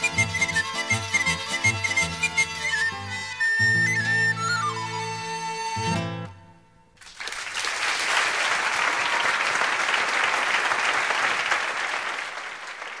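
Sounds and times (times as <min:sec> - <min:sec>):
audience applauding: 0:07.0 - 0:13.0.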